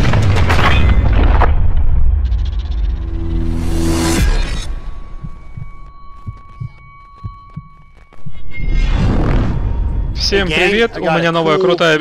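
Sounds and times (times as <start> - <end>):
heartbeat-like double thumps: 5.0 - 8.3.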